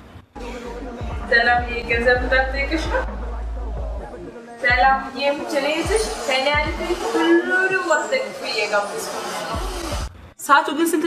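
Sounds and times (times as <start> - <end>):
steady low hum: 0.0 - 7.1
background music: 0.0 - 10.4.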